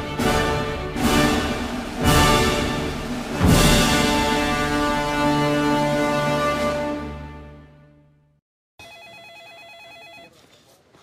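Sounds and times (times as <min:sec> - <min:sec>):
music theme: 0:00.0 - 0:08.4
electronic telephone ringing: 0:08.8 - 0:10.4.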